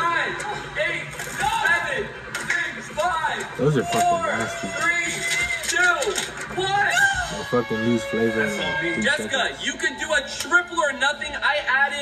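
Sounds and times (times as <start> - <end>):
excited voices shouting: 3.6 - 9.2.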